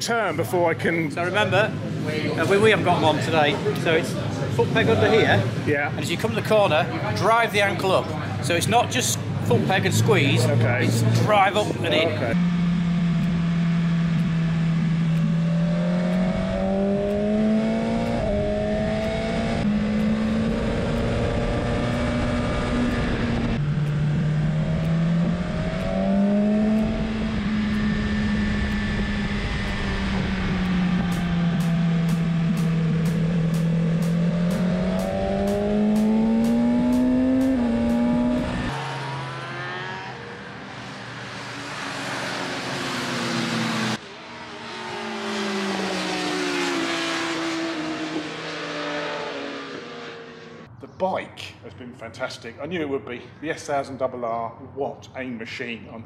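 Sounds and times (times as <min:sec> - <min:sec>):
motorcycles passing: 0:00.0 - 0:50.8
motorcycle engine at speed: 0:09.4 - 0:50.7.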